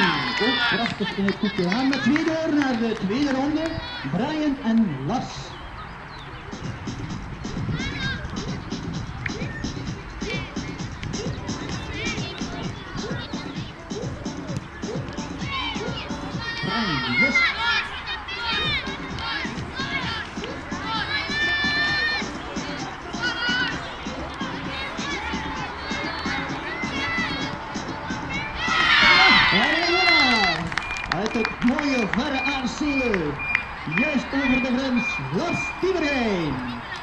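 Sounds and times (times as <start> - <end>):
children shouting: 0.0 - 2.3, 7.6 - 9.6, 10.2 - 37.0
background music: 6.5 - 36.8.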